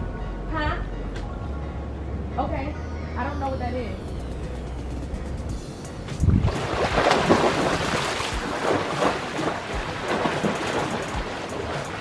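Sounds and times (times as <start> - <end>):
swimmer splashing water: 6.3 - 12.0.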